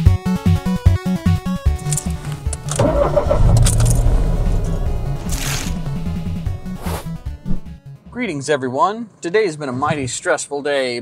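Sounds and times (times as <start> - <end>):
background music: 0.0 - 9.2
car engine starting and revving: 1.6 - 7.8.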